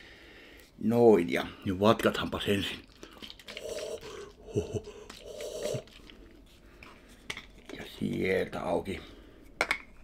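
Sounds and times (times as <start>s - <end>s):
juice sloshing in a bottle: 2.1s - 6.3s.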